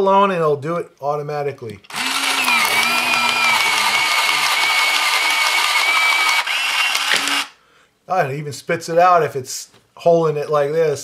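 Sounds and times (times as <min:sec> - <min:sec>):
electric pencil sharpener grinding: 0:01.9 - 0:07.5.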